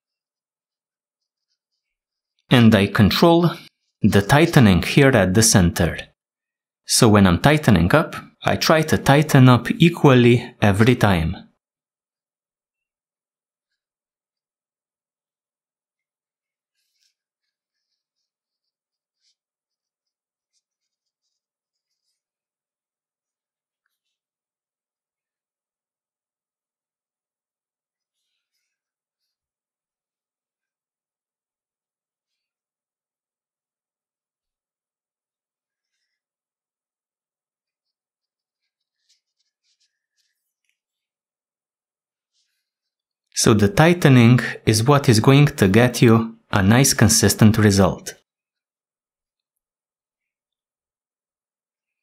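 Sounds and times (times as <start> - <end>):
cord rubbing through fingers: 16.6 - 24.4, 37.4 - 43.3.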